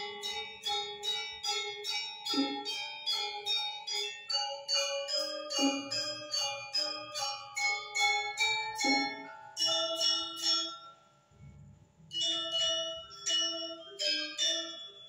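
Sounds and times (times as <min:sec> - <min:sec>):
gamelan metallophone notes: 0:00.0 - 0:15.0.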